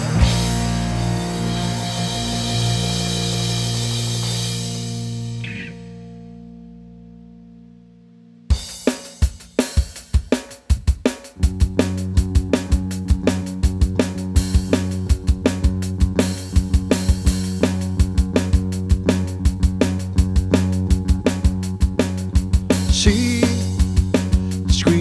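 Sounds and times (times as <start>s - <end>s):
drum kit steady beat: 0.0s - 5.6s, 8.5s - 25.0s
bass and guitar notes: 0.0s - 9.8s, 11.3s - 25.0s
rock band chord ringing: 0.0s - 25.0s.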